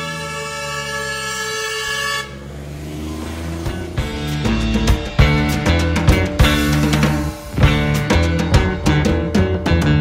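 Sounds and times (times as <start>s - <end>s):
truck air horn blast: 0.0s - 3.9s.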